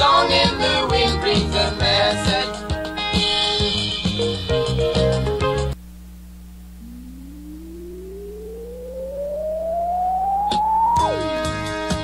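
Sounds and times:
faint low hum: 5.8 - 11.2
electronic tone sweeping upward: 6.7 - 11.4.

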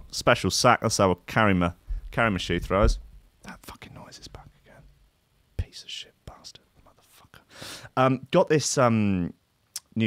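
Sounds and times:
man whispering: 2.1 - 5.0, 5.6 - 7.5.

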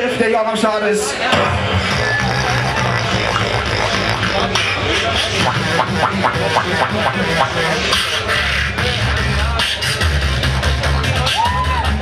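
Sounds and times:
beatboxer bass line: 1.3 - 12.0
sharp vocal strokes: 1.6 - 10.2.

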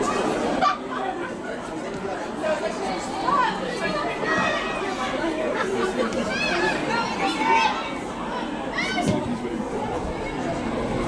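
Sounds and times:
open-air background noise: 0.0 - 11.0
voices calling and chattering: 0.0 - 11.0.

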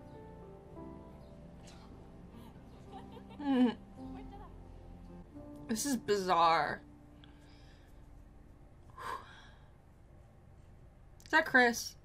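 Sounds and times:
woman breathing: 7.1 - 8.2, 8.8 - 10.2.

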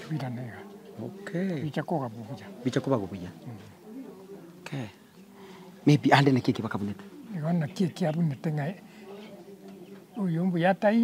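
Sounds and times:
man talking: 0.0 - 5.1, 5.8 - 11.0.

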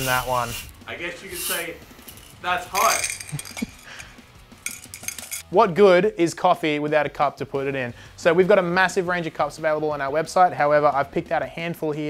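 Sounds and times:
metal roaster clinking on mug: 1.4 - 4.0, 4.6 - 5.4.

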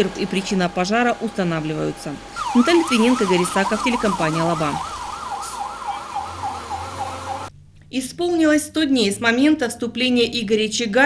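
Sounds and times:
fire engine siren warbling: 0.0 - 7.5.

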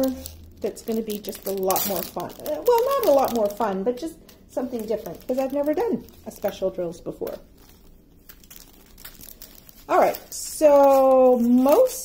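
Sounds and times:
plastic bags crinkling: 0.0 - 12.0.

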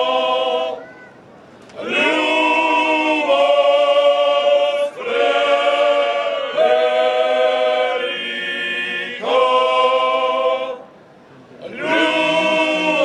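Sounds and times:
men's choir singing unaccompanied: 0.0 - 0.8, 1.7 - 11.0, 11.6 - 13.0.

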